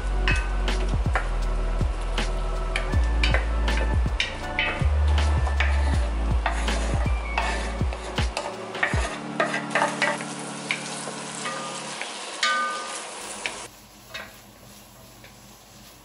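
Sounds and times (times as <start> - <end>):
onion sizzling in a pot: 0.0 - 16.0
wooden spoon scraping a pot: 2.7 - 12.0.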